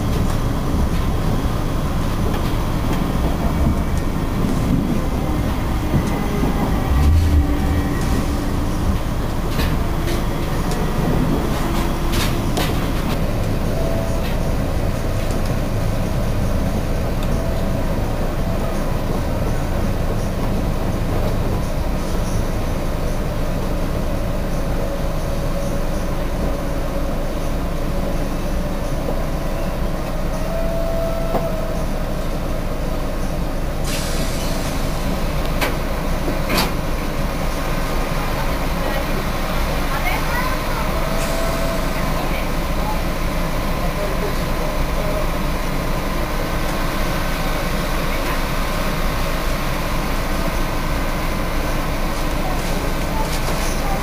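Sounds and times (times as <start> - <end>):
train running and machinery noise: 0.0 - 54.0.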